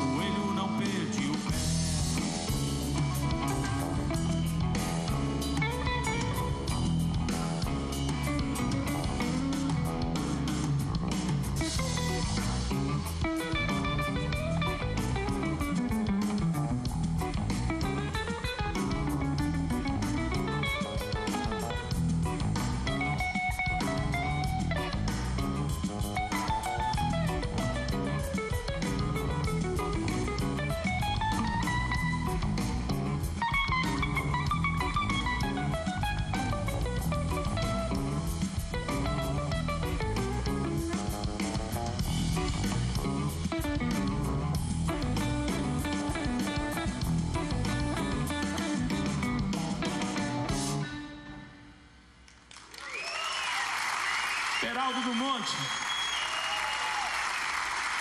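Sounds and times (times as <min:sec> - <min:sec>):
electric guitar solo: 0:00.0 - 0:09.9, 0:11.6 - 0:51.7
band playing groove: 0:00.0 - 0:51.5.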